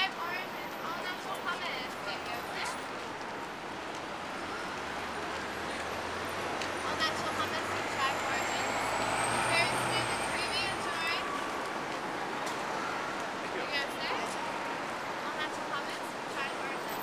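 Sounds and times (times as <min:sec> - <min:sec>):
passers-by talking: 0:00.0 - 0:17.0
street traffic: 0:00.0 - 0:17.0.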